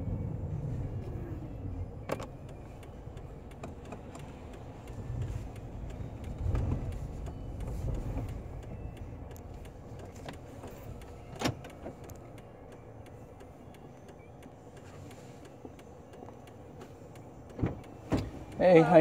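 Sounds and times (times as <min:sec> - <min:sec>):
car cabin thuds and rumble: 0:00.0 - 0:12.2, 0:17.4 - 0:19.0.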